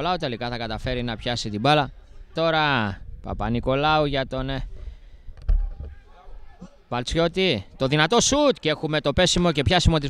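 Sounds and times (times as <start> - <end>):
faint distant voices: 4.6 - 8.8.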